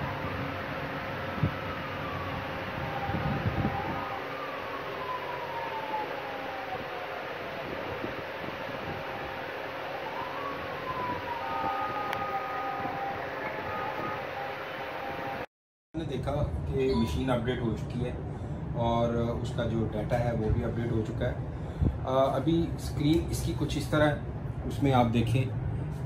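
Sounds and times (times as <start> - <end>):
siren-like wail: 0.0 - 15.5
steady hum: 11.6 - 15.5.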